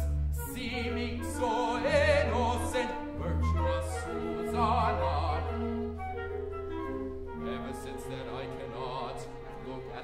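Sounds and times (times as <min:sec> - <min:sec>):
male singer with wide vibrato: 0:00.0 - 0:05.8, 0:07.4 - 0:10.0
opera orchestra playing held notes: 0:00.0 - 0:10.0.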